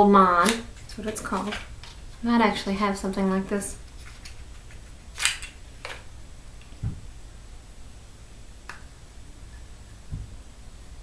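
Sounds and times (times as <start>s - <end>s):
packaging scraping rustle: 3.9s - 4.8s
low thump: 6.8s - 7.1s.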